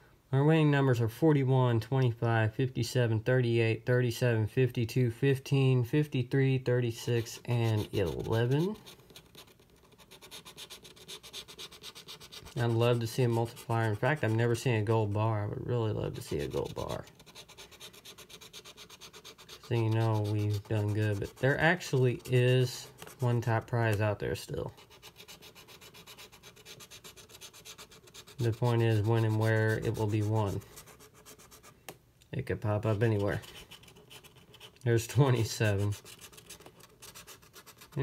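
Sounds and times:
lottery ticket being scratched: 6.8 - 31.7, 32.7 - 38.0.

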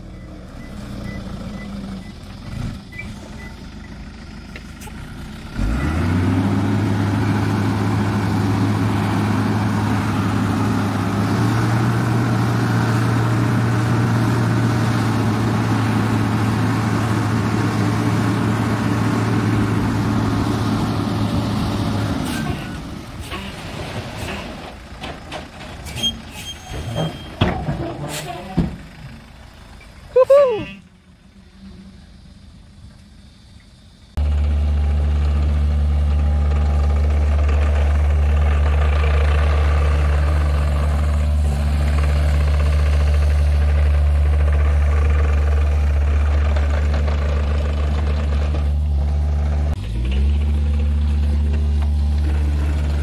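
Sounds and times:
diesel truck engine: 0.0 - 53.0.

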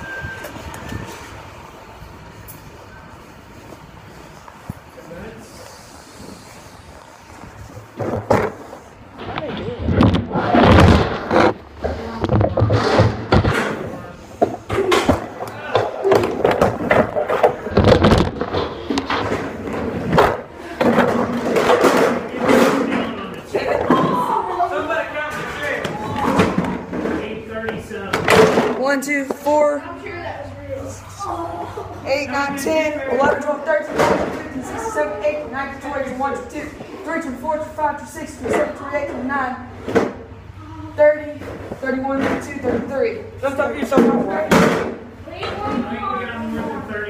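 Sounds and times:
chairs being stacked: 7.9 - 24.2
kids talking: 22.3 - 26.9, 28.8 - 39.8, 40.4 - 47.0.

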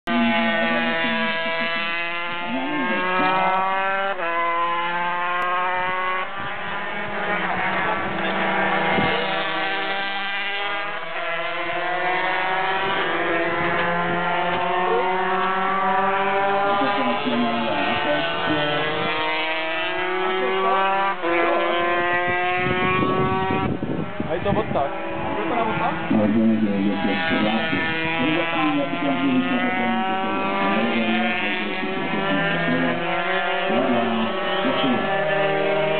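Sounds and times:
racing motorcycle engines passing: 0.1 - 35.9.

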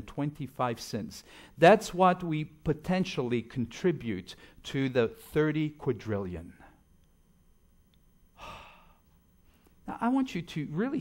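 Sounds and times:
man breathing out: 8.4 - 9.7.

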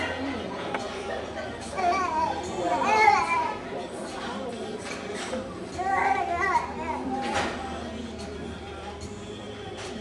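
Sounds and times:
young children chattering: 0.0 - 7.8
child's high-pitched voice: 5.8 - 7.4.

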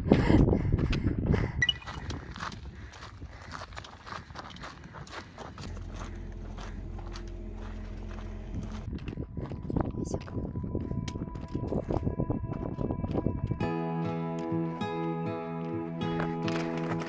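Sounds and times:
footsteps on loose stone: 1.6 - 13.6, 16.1 - 17.0
steady low hum: 4.2 - 13.5.

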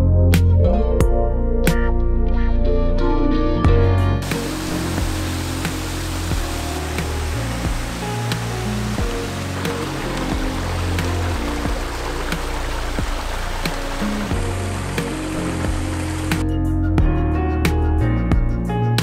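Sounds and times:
background music with steady beat: 0.0 - 19.0
creek cascading over rocks: 4.2 - 16.4.

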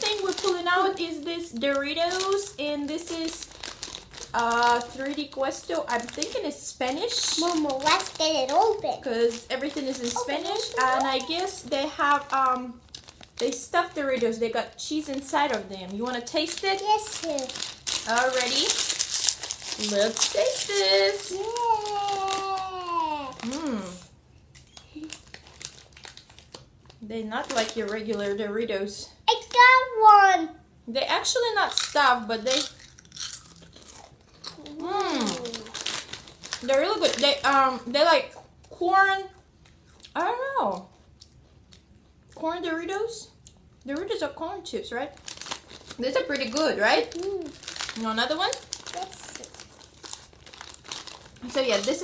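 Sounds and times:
foil chip bag crinkling: 0.0 - 28.4, 31.7 - 37.9, 45.1 - 52.0.

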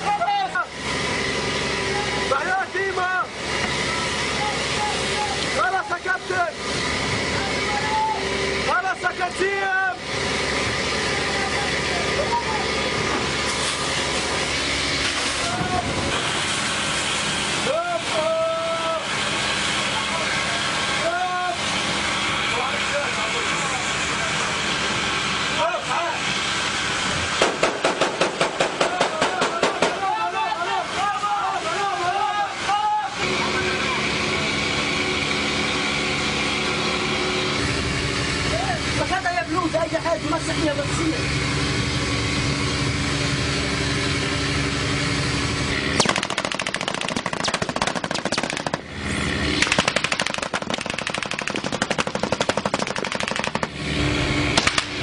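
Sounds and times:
voices calling out: 0.0 - 16.2, 28.6 - 37.2
automatic gunfire: 27.4 - 30.0, 46.0 - 48.8, 49.6 - 53.7.

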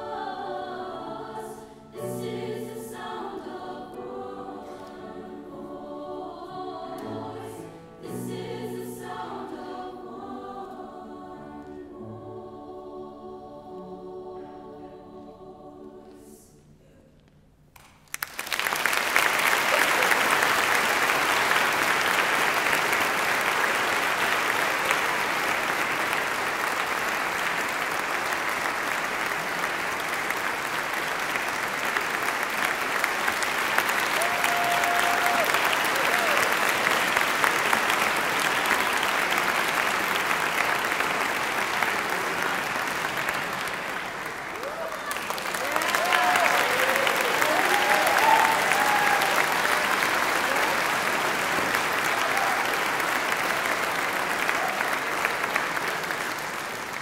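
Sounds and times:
audience applauding: 17.8 - 57.0.

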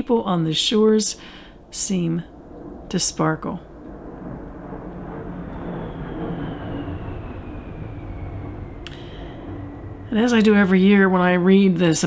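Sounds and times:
faint falling whine: 0.0 - 12.0
steady low rumble: 0.0 - 12.0.

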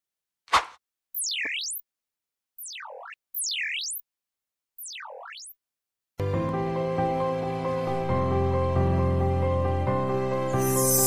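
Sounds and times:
swooping electronic tones: 1.2 - 1.8, 2.6 - 4.0, 4.8 - 5.6.

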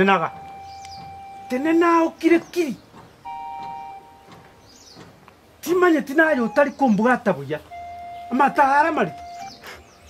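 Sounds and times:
two-note keyboard chord: 0.2 - 1.9, 3.2 - 4.5, 7.7 - 9.6.

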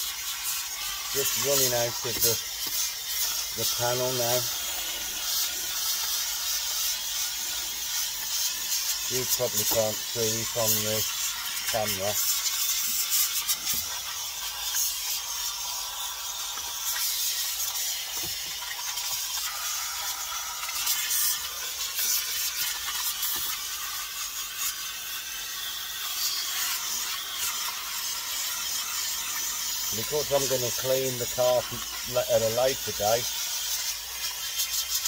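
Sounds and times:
steam cleaner hissing: 0.0 - 35.0.

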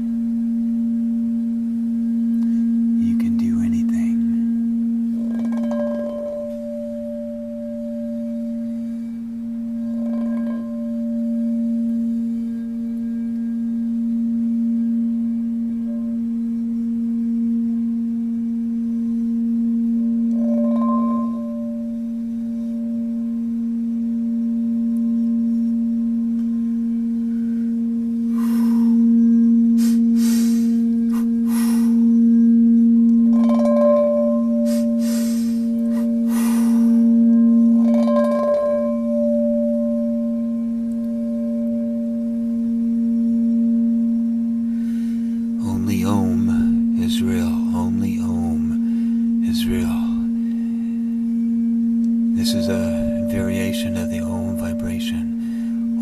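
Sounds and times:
singing bowl sustained tone: 0.0 - 56.0.

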